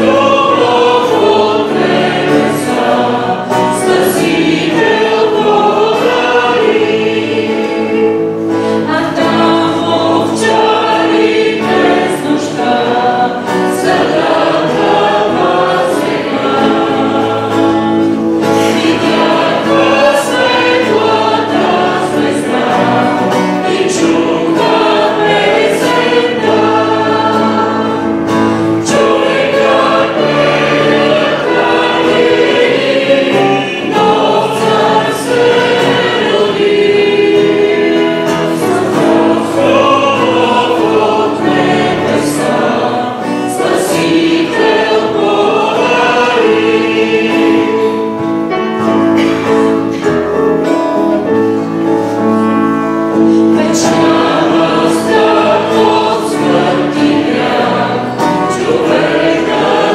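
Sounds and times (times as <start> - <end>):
acoustic guitar: 0.0 - 59.9
digital piano: 0.0 - 59.9
group singing a hymn: 0.0 - 59.9.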